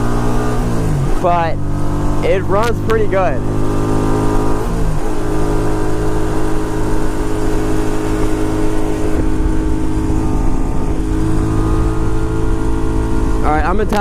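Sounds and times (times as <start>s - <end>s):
motorcycle engine high-revving drone: 0.0s - 14.0s
wind rushing over microphone: 0.0s - 14.0s.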